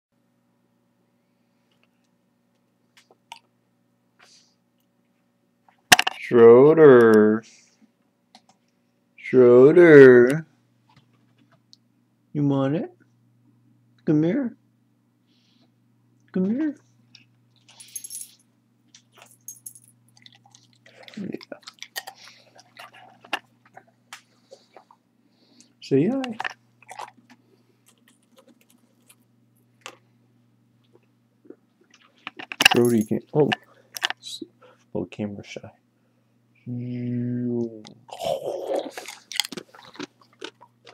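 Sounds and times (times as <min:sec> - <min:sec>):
dog collar tags jingling: 0:17.7 - 0:18.4, 0:19.2 - 0:20.0
dog crunching chip: 0:20.1 - 0:23.9, 0:26.2 - 0:30.0, 0:38.9 - 0:40.9.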